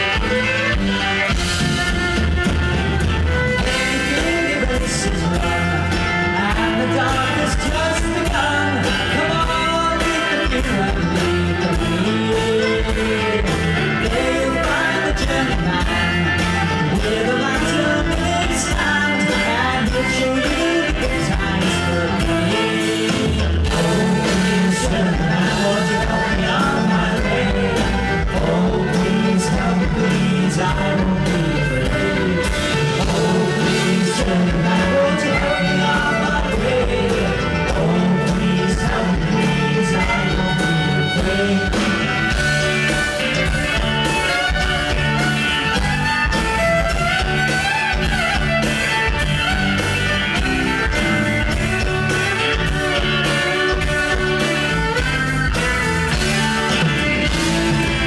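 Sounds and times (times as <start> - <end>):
bass guitar: 0.0 - 58.0
drums with cymbal hits: 0.0 - 58.0
electric guitar: 0.0 - 58.0
fiddle melody with sliding notes: 0.0 - 58.0
folk-rock band playing live: 0.0 - 58.0
sung lead vocal: 0.0 - 58.0.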